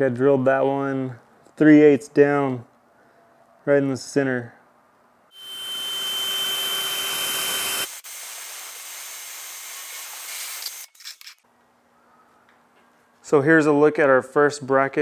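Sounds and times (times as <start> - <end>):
power drill whining: 5.3 - 8.1.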